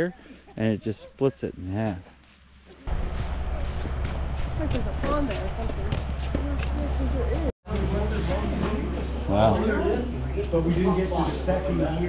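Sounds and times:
low machinery hum: 2.8s - 12.0s
people chatting: 4.6s - 12.0s.

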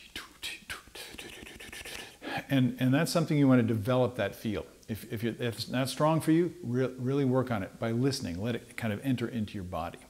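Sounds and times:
man whispering mouth-drum sounds: 0.0s - 2.4s.

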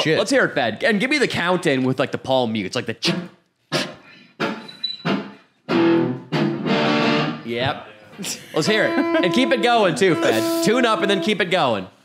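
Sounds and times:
electric guitar chords strummed: 5.7s - 7.4s.

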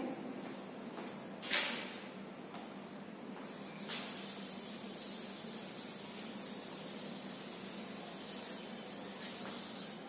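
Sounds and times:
duster wiping chalkboard: 3.9s - 10.0s.

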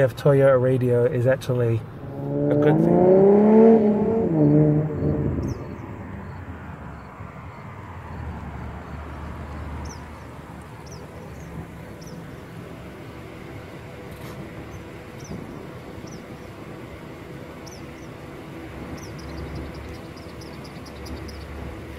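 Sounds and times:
car engine rumbling: 0.0s - 21.9s
high bird chirps: 18.9s - 21.6s.

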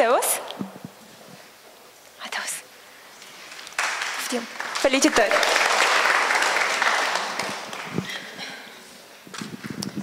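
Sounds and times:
scattered claps and knocks: 3.5s - 8.2s
audience applause: 3.8s - 8.4s.

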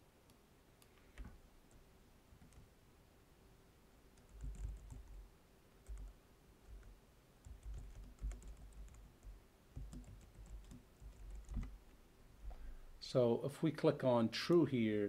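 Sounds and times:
typing on computer keyboard: 4.2s - 5.2s, 5.8s - 11.8s.

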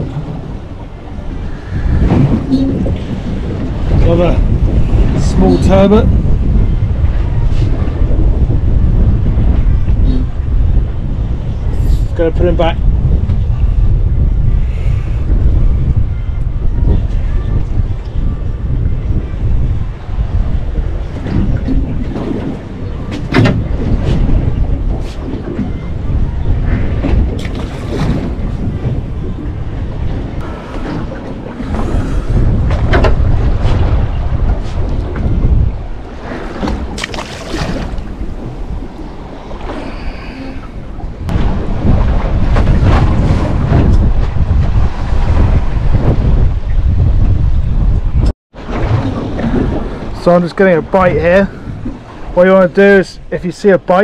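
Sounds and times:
sea wash: 0.0s - 46.9s, 48.5s - 54.0s
wind gusting across microphone: 0.0s - 54.0s.

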